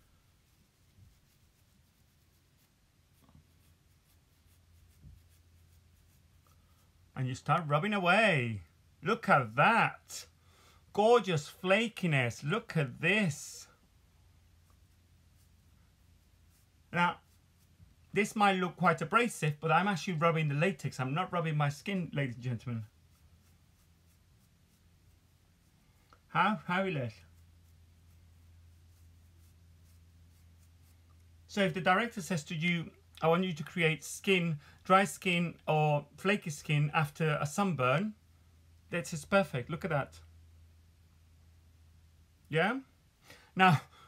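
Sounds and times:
toothbrush bristles scratching skin: 0.0s - 7.0s, 14.4s - 26.3s, 27.0s - 31.3s
low steady hum: 0.0s - 44.0s.

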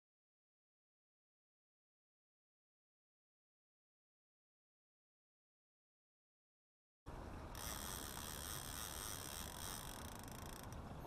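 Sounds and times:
low open-air background noise: 7.1s - 11.0s.

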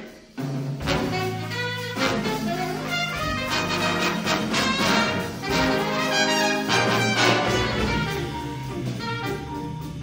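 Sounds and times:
jazz big band playing: 0.0s - 10.0s.

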